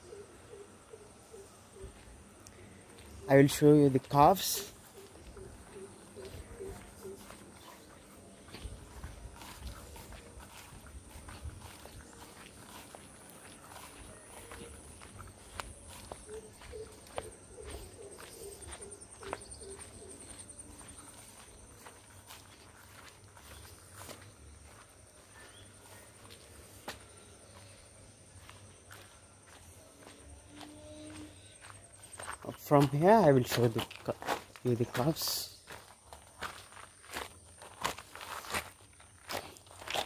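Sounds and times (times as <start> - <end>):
footsteps on grass and dirt: 1.8 - 40.0.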